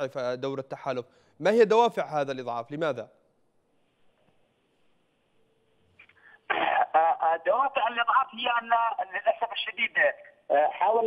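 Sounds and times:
man coughing over telephone: 0:06.5 - 0:07.3.

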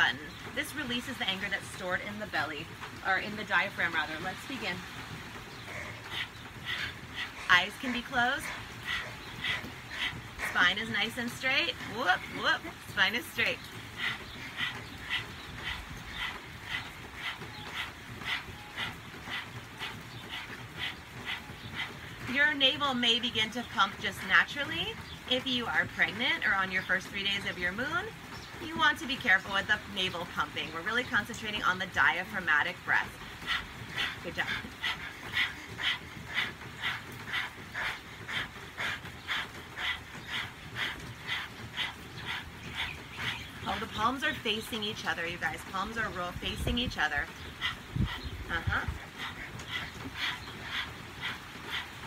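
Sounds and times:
people panting rapidly: 0:00.1 - 0:52.0.

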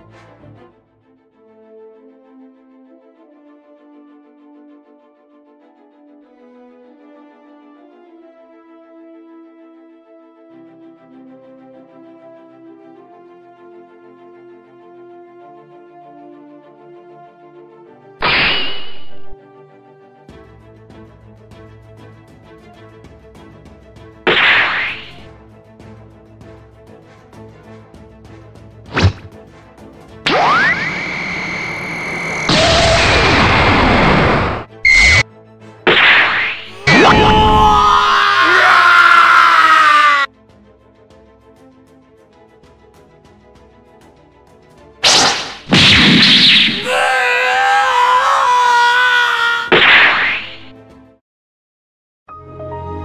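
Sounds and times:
rhythmic background music: 0:00.0 - 0:01.0, 0:20.2 - 0:30.4, 0:40.3 - 0:46.4
cartoon whack: 0:18.2 - 0:19.4, 0:24.3 - 0:25.2, 0:28.9 - 0:29.3, 0:30.3 - 0:31.0, 0:32.2 - 0:35.2, 0:35.9 - 0:37.8, 0:45.0 - 0:46.9, 0:49.6 - 0:50.7
wavering pitched tone: 0:30.3 - 0:33.3
loud blast sound effect: 0:30.3 - 0:35.2, 0:45.0 - 0:46.9.

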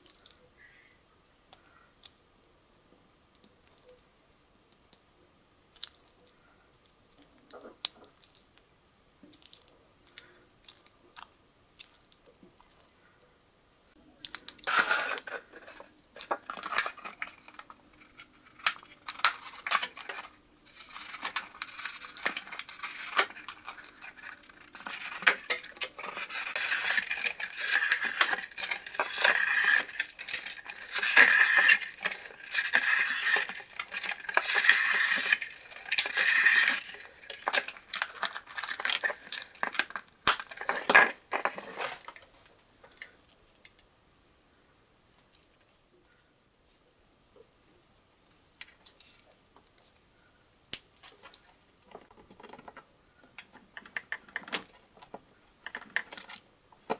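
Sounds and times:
plastic clicks and crinkles: 0:00.0 - 0:00.5, 0:03.3 - 0:13.1, 0:14.2 - 0:43.9, 0:48.6 - 0:56.9
knife cutting plastic bottle: 0:18.0 - 0:42.1.

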